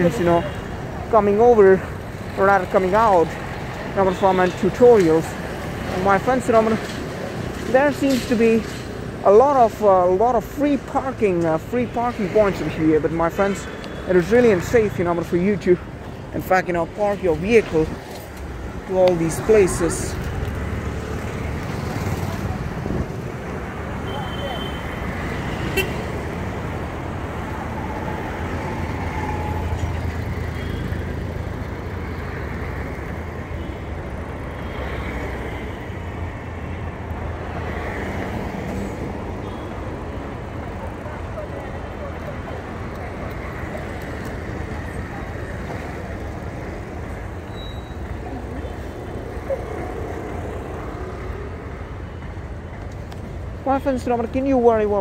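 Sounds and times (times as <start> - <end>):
traffic engine and tyre rumble: 0.0 - 55.0
horn toots: 24.0 - 26.1.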